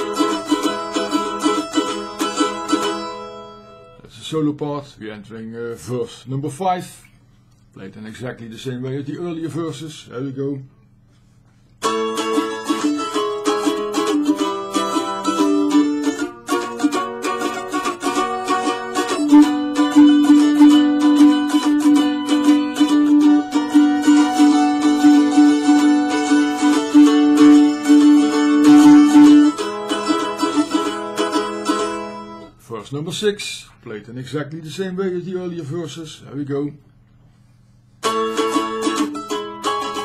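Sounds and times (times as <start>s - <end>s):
mandolin picking melody: 0.0s - 4.0s, 11.8s - 32.6s, 38.0s - 40.0s.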